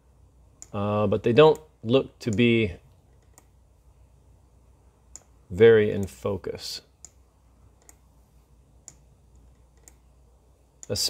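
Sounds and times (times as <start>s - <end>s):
faint low hum: 0.0s - 11.0s
computer clicks: 5.1s - 5.3s, 7.8s - 8.0s, 8.8s - 10.0s.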